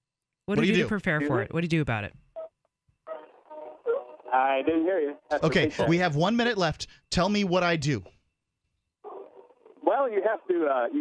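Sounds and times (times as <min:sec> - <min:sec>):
person speaking: 0:00.5 - 0:01.5, 0:04.6 - 0:06.7
man talking over telephone: 0:00.6 - 0:01.4, 0:03.1 - 0:08.1, 0:09.1 - 0:11.0.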